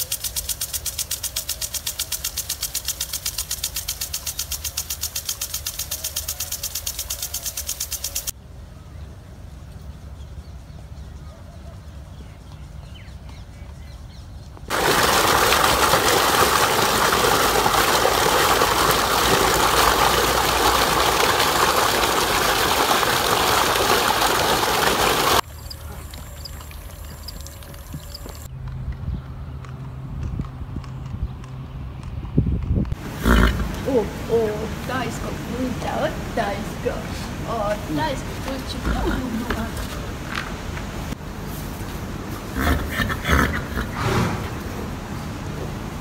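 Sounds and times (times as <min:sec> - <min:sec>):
fast-flowing water rushing: 0:14.7 - 0:25.4.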